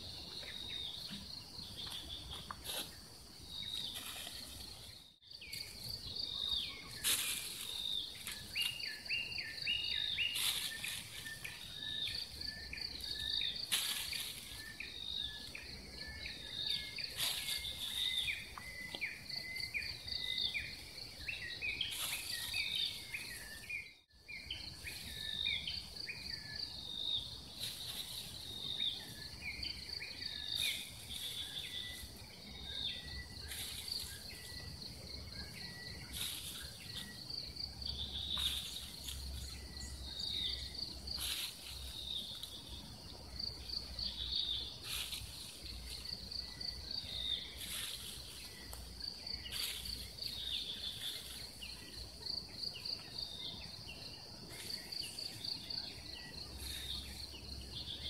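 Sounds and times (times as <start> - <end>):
birds chirping and whistling: 0.0 - 58.0
high insect trill: 0.0 - 58.0.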